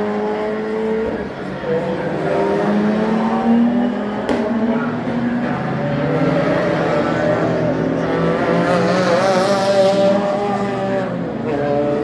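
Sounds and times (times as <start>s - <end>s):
racing car engines passing: 0.0s - 12.0s.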